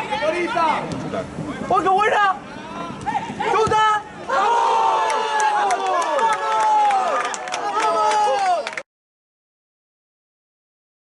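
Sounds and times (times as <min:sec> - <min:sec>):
crowd shouting and cheering: 0:01.6 - 0:08.8.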